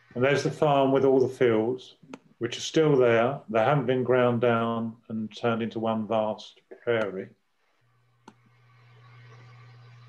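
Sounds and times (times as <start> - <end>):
low steady hum with hiss: 0.0 - 10.0.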